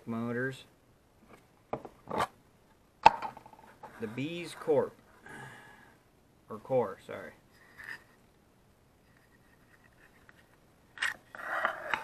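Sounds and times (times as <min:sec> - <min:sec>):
plastic lid scraping: 0:11.0 - 0:12.0.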